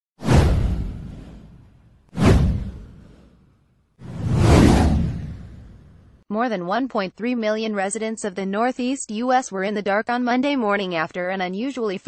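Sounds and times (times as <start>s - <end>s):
whoosh sound effects: 0.2s - 6.1s.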